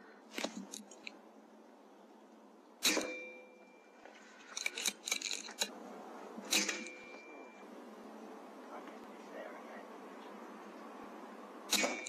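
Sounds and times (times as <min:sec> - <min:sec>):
air rifle shots: 0:02.8 - 0:03.4, 0:06.4 - 0:07.0, 0:11.7 - 0:12.0
rifle lever action clicks: 0:04.6 - 0:05.7.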